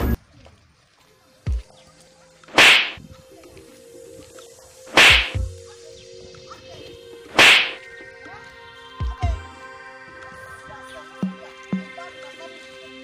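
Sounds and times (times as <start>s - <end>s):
sharp whip-like slaps: 2.5s - 3.0s, 4.9s - 5.4s, 7.3s - 7.8s.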